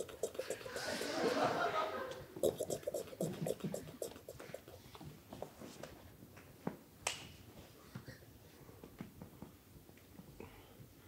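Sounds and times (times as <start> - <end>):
marker pen on cardboard board: 0.0 - 1.0, 2.4 - 4.9.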